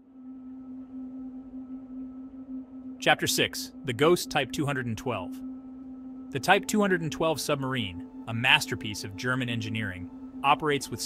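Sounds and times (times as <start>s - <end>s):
faint higher tone: 0.0s - 11.0s
low music drone: 0.0s - 11.0s.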